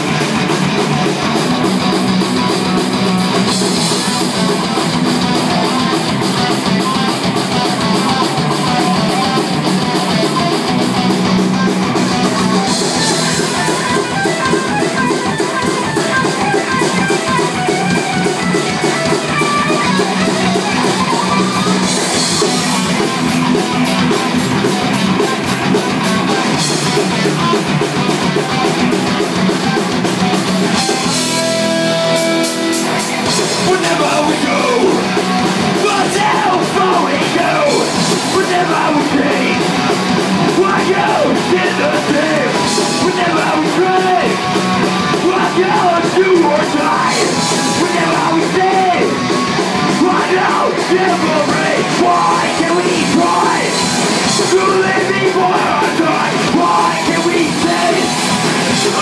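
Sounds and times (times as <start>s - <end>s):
drum kit beat: 0.0s - 59.0s
electric guitars: 0.0s - 59.0s.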